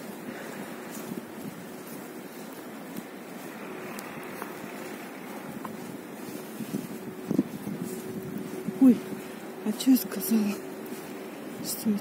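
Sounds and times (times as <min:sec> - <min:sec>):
faint steady hum: 0:00.0 - 0:12.0
wind on microphone: 0:00.0 - 0:12.0.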